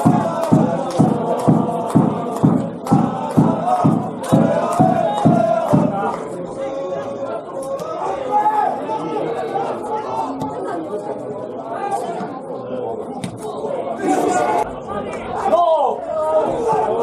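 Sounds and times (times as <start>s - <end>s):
sharp knocks: 0.0s - 6.0s
voices calling out and chattering: 0.0s - 17.0s.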